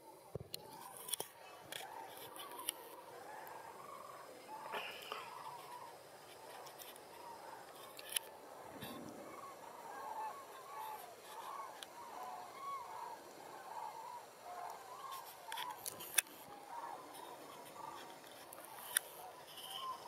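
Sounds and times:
cranes trumpeting in flight: 0.7s - 20.0s.

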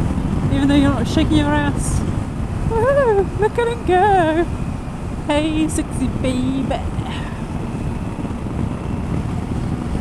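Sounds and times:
road noise: 0.0s - 10.0s
wind on microphone: 0.0s - 10.0s.

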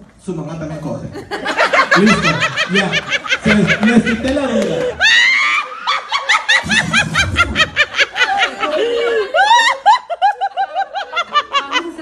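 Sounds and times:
woman laughing hard: 4.5s - 12.0s.

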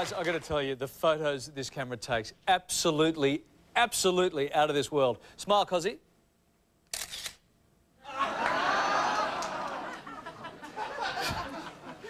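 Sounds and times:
camera shutter click: 6.9s - 7.4s
studio audience laughing: 8.0s - 12.0s.

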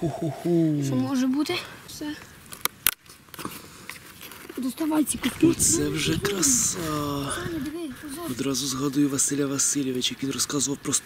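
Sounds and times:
hand rustling in soil and leaves: 4.0s - 8.6s.

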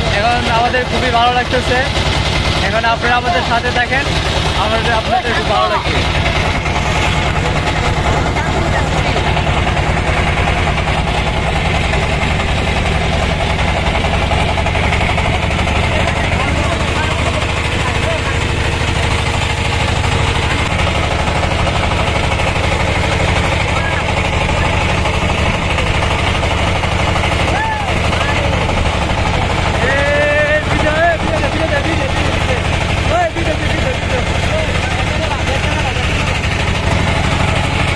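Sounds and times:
boat engine pulsing: 0.0s - 37.9s.

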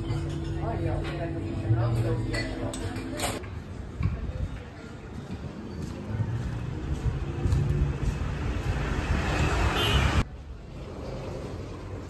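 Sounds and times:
street traffic background: 0.0s - 12.0s
motor vehicle passing: 6.1s - 12.0s.

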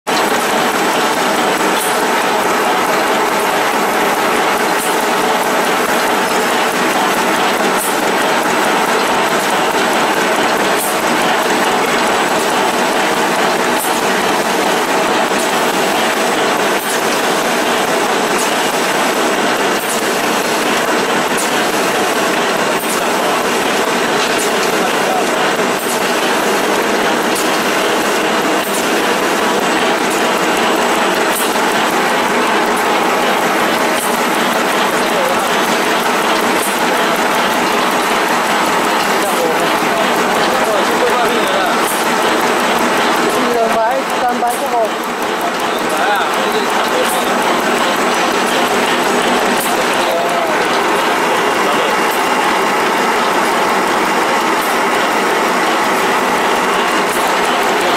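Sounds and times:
machine mechanical clatter: 0.1s - 57.9s.

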